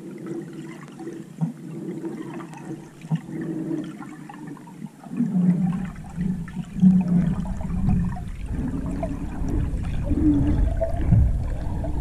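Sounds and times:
underwater water rushing: 0:00.0 - 0:12.0
low hum: 0:05.7 - 0:12.0.

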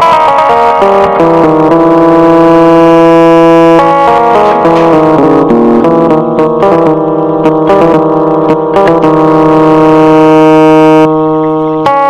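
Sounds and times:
electronic keyboard sustained note: 0:00.0 - 0:12.0
keyboard drone: 0:00.0 - 0:12.0.

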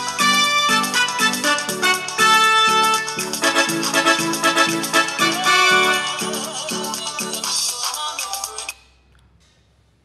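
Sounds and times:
electronic keyboard playing chords: 0:00.0 - 0:07.6.

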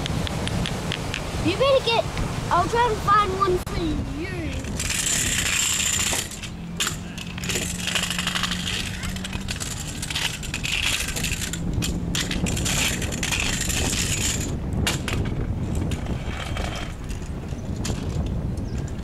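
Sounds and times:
scooter wheels rolling on concrete: 0:00.0 - 0:19.0
scooter clicks and rattles: 0:04.5 - 0:19.0.

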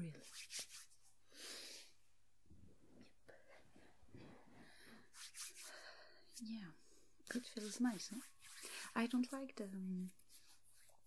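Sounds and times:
fingertips rubbing cream: 0:05.1 - 0:05.7, 0:07.3 - 0:11.0.

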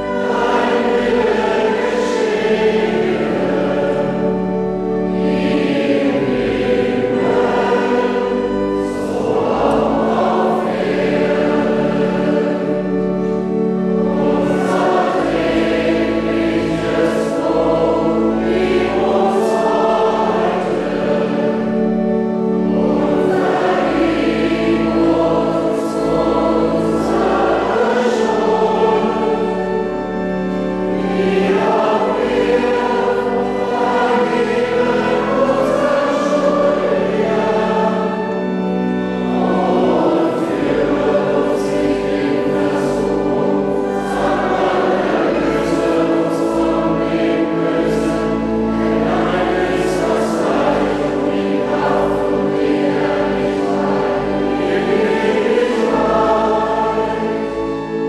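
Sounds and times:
choir singing sacred piece: 0:00.0 - 0:58.0.

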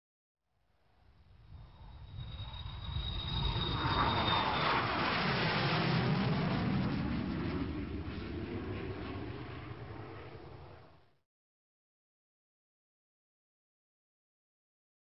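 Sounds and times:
jet aircraft roar: 0:01.1 - 0:11.2
high jet whine: 0:01.2 - 0:11.0.

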